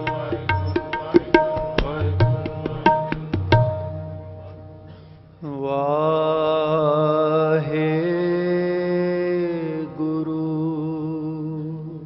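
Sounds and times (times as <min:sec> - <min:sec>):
man singing long held note: 0:05.4 - 0:12.0.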